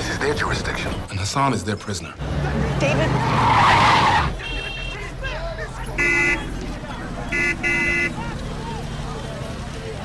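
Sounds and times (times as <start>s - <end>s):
tyres skidding: 0.0s - 10.0s
car brakes squealing: 3.1s - 5.0s.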